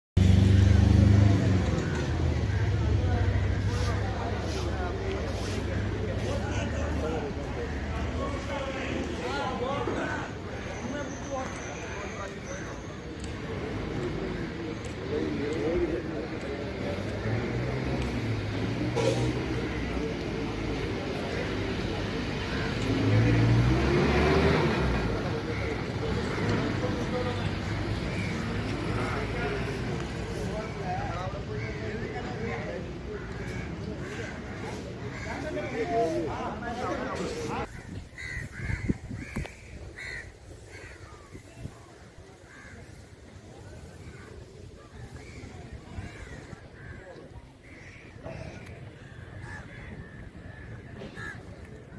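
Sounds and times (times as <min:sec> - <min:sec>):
engine speeding up: 0:00.2 - 0:03.8, 0:21.8 - 0:28.0
background traffic: 0:00.2 - 0:51.9
distant voices: 0:00.2 - 0:51.9
crows cawing: 0:38.2 - 0:41.3, 0:42.4 - 0:43.1, 0:46.0 - 0:51.5.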